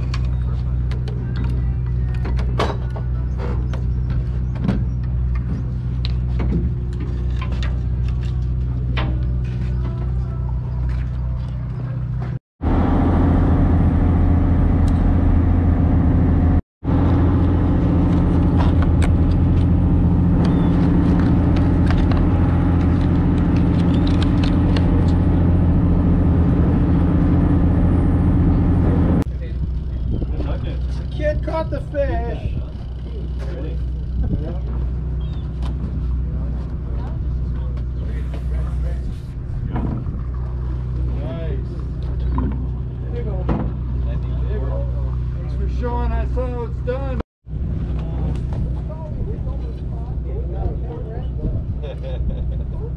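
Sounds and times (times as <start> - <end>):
boat engine droning: 0.0 - 52.9.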